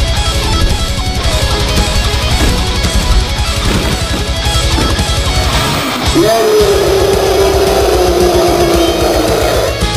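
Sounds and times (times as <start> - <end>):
heavy metal guitar music: 0.0 - 9.9
young man yelling: 6.1 - 9.8.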